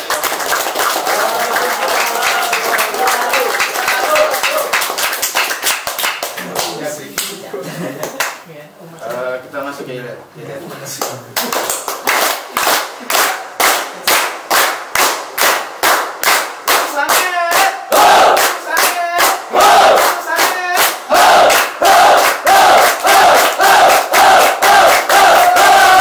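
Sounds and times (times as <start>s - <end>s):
group clapping in unison: 0.0s - 7.4s, 8.0s - 8.4s, 11.0s - 26.0s
group shouting or chanting: 17.5s - 26.0s.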